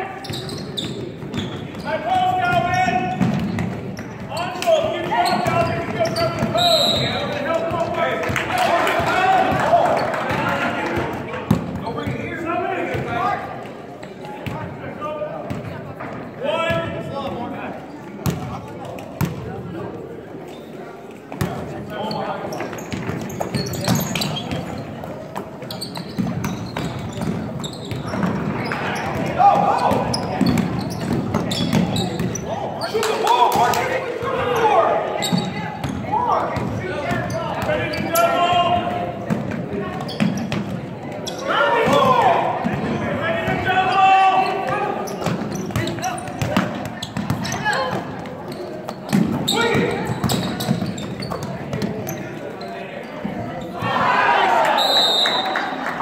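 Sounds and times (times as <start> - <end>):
echoing voices: 27.4 - 54.8.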